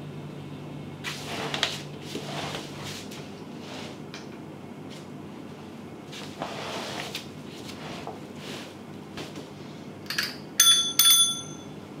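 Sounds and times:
handlebar bell ringing: 0:10.1 - 0:11.8.

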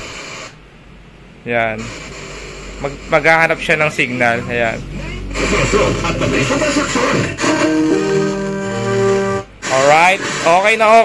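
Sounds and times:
radio music through speaker: 0:01.8 - 0:08.6, 0:09.6 - 0:11.0.

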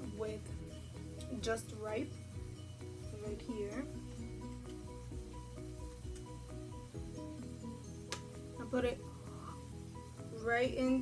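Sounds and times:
background music with repeated notes: 0:00.0 - 0:11.0
steady low bass: 0:00.0 - 0:11.0.

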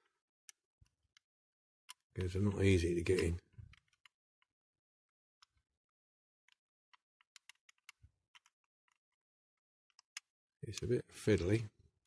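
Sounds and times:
small plastic clicks and taps: 0:03.1 - 0:04.6, 0:05.3 - 0:11.6.

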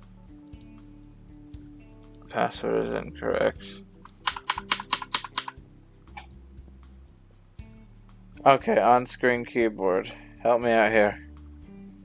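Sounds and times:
computer keyboard typing: 0:03.6 - 0:05.6.

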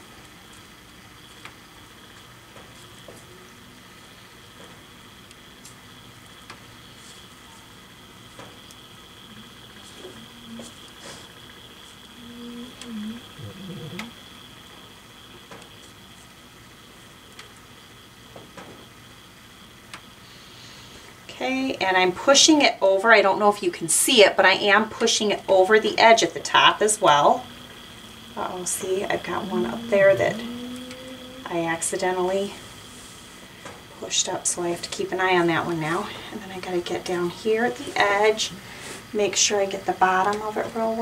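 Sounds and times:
faint high whine: 0:00.0 - 0:41.0.

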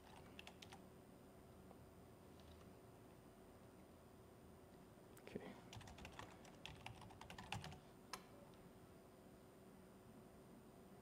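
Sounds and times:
faint laptop keyboard typing: 0:00.0 - 0:00.8, 0:05.7 - 0:08.3.

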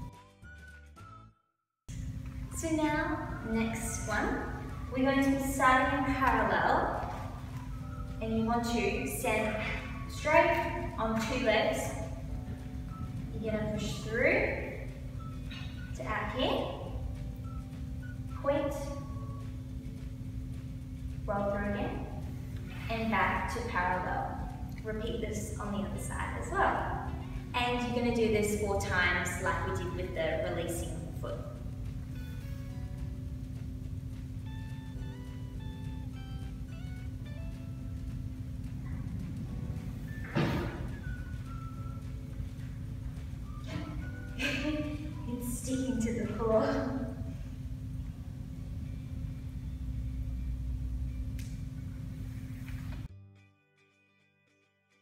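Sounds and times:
soft background melody: 0:00.0 - 0:53.8
faint hum: 0:01.9 - 0:53.1
low rumble: 0:01.9 - 0:53.1.

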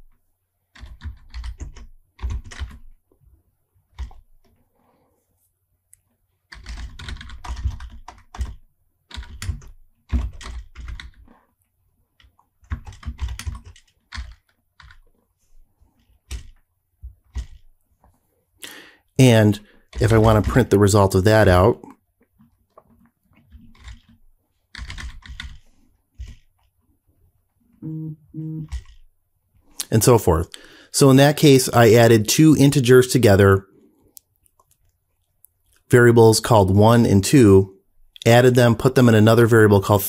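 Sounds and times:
typing on computer keyboard: 0:00.7 - 0:02.9, 0:03.9 - 0:04.2, 0:06.5 - 0:11.4, 0:12.2 - 0:15.2, 0:16.0 - 0:16.6, 0:17.2 - 0:17.7, 0:23.4 - 0:26.5, 0:28.6 - 0:29.0.

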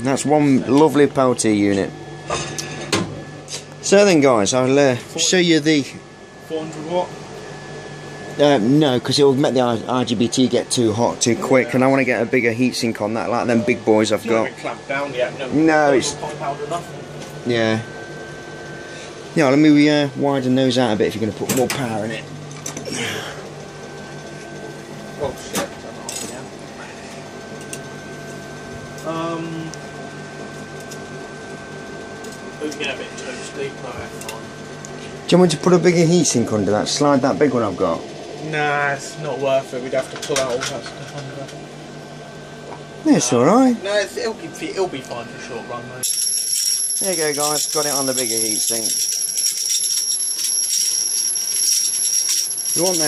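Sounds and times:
high-pitched electrical whine: 0:00.0 - 0:53.0
high-pitched electronic whine: 0:43.0 - 0:53.0
high-voltage arc crackling: 0:47.0 - 0:53.0.

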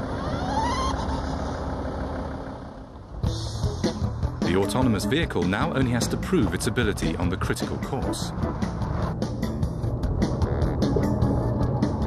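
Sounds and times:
van engine idling: 0:00.0 - 0:12.0
music: 0:03.2 - 0:12.0.

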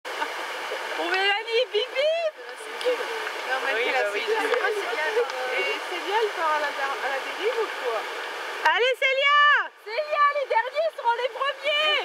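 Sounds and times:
river rapid rushing: 0:00.1 - 0:12.0
people calling out and talking: 0:01.0 - 0:12.0.

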